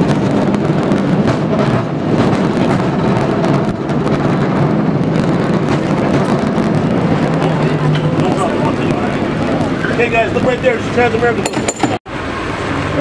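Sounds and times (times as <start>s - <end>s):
cable car rumble and clatter: 0.0s - 13.0s
rattles: 11.3s - 12.0s.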